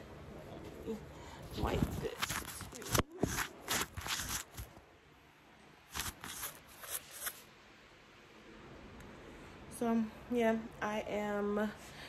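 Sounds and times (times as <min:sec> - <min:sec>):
cloth rubbing camera lens: 0:01.6 - 0:04.8, 0:05.9 - 0:07.4.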